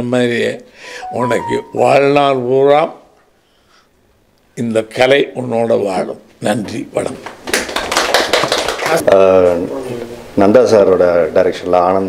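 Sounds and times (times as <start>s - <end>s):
people applauding: 7.5s - 9.0s.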